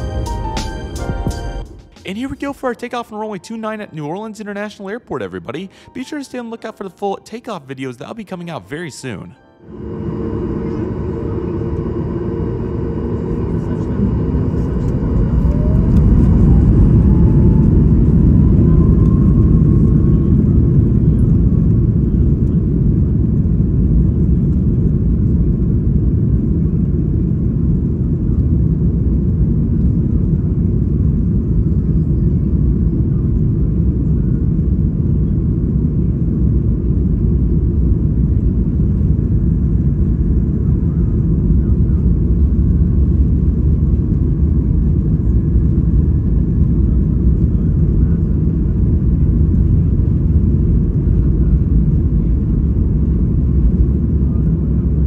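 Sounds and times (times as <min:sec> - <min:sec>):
faint rising whine: 0:09.5 - 0:23.1
jet engines at takeoff: 0:09.7 - 0:55.0.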